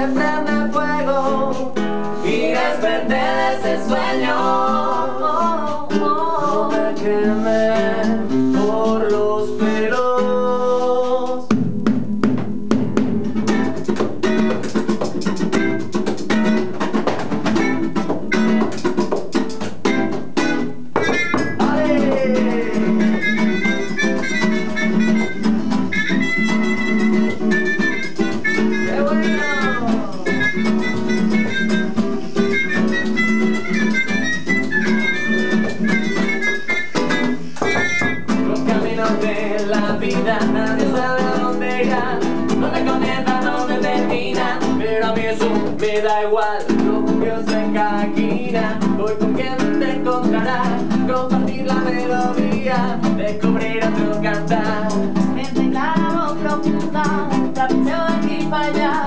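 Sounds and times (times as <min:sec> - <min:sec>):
classical guitar strummed briskly: 0:00.0 - 0:59.0.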